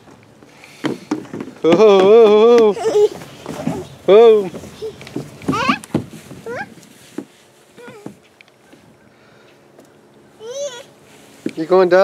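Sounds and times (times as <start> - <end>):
toddler squealing: 4.8 - 5.8, 6.4 - 6.7, 10.4 - 10.9.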